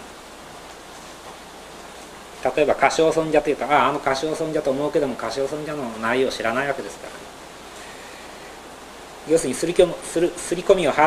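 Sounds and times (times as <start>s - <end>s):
recording hiss: 0.0s - 11.0s.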